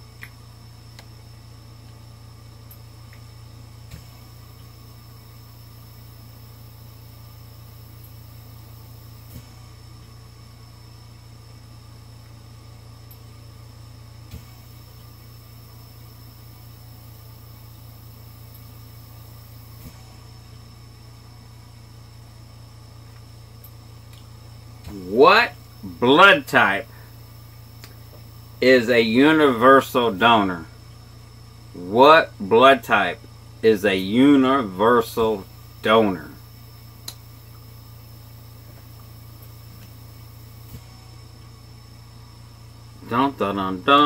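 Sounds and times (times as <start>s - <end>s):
faint hiss: 0.0s - 44.0s
high whine: 0.0s - 44.0s
low electrical hum: 0.0s - 44.0s.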